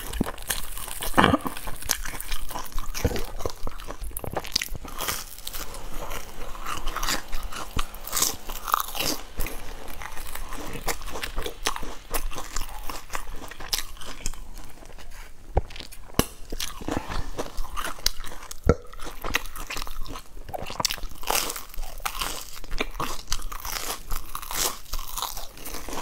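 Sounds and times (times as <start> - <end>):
person chewing crunchy food: 0.0 - 26.0.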